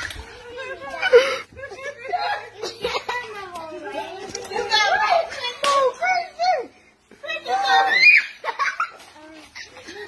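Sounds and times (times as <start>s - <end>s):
young child shouting: 7.3s - 8.4s.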